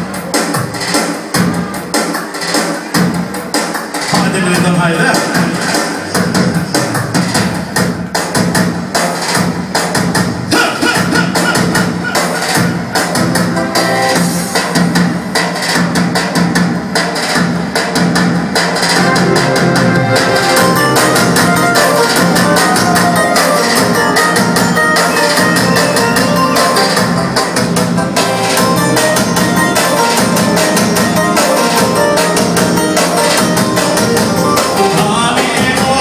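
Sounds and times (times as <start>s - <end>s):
folk dance music on keyboard: 0.0s - 36.0s
steady drum beat: 0.0s - 36.0s.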